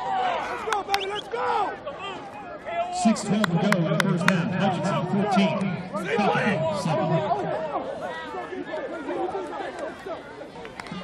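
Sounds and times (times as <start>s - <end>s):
people talking at once: 0.3s - 11.0s.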